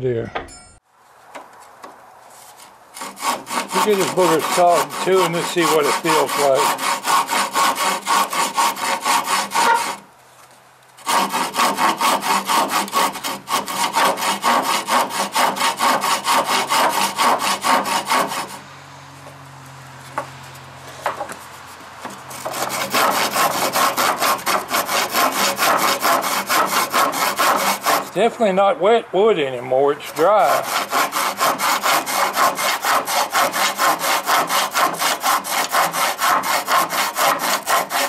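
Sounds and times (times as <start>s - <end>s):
hand saw cutting wood: 2.4s - 10.1s, 11.0s - 18.6s, 20.1s - 28.4s, 30.0s - 38.0s.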